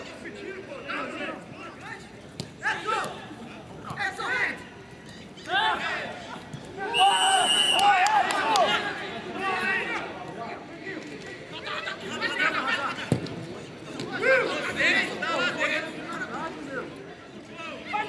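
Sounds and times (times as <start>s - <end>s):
people shouting calls: 6.8s - 8.8s
whistle blast: 6.9s - 8.0s.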